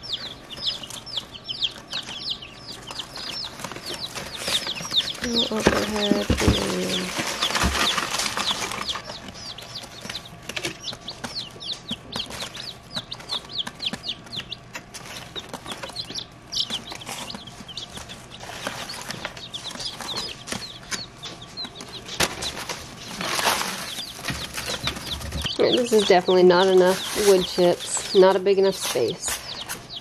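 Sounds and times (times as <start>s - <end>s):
chicks peeping: 0.0s - 30.0s
wood shavings rustling: 3.4s - 10.2s, 22.2s - 29.9s.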